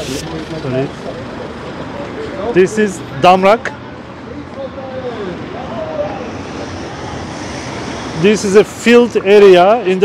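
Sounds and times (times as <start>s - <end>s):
passing cars rushing: 0.0s - 10.0s.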